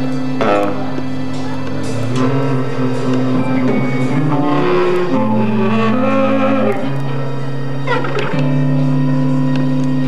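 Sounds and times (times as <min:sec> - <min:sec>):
guitar: 0:00.0 - 0:10.0
saxophone: 0:00.0 - 0:10.0.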